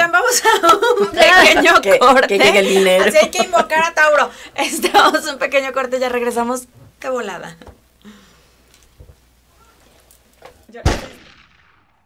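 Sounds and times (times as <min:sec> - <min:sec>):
loud boom impact: 0:10.9 - 0:12.0.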